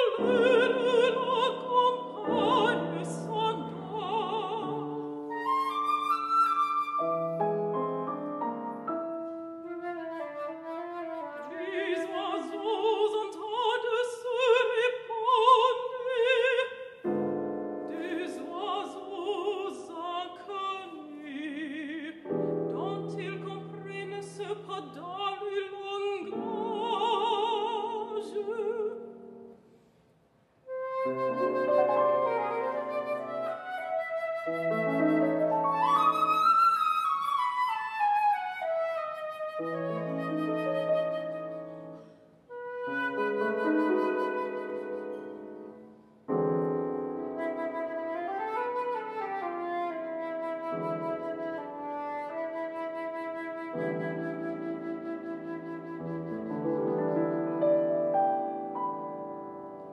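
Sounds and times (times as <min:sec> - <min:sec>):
woman singing: 0:00.0 - 0:05.2, 0:11.2 - 0:17.0, 0:17.9 - 0:29.4
piano chords: 0:00.0 - 0:10.2, 0:17.1 - 0:19.3, 0:30.7 - 0:36.7, 0:37.4 - 0:48.9, 0:53.6 - 0:59.9
flute melody: 0:00.0 - 0:12.8, 0:30.6 - 0:59.9
flute playing low notes: 0:30.7 - 0:45.8.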